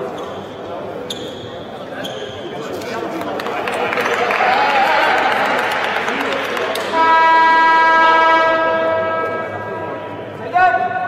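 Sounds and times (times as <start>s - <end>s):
arena horn blast: 6.9s - 9.8s.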